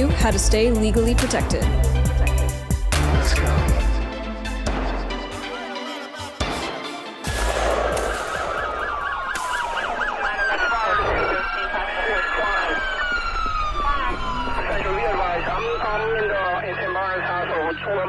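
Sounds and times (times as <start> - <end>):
emergency sirens yelping and wailing: 5.1 - 18.0.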